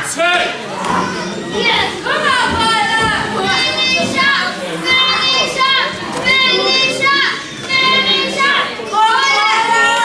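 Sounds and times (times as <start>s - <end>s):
children chanting: 0.8s - 10.0s.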